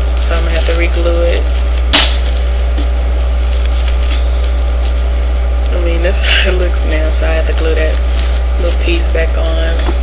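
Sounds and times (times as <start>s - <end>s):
low electrical hum: 0.0s - 10.0s
handling rustles: 0.3s - 5.8s.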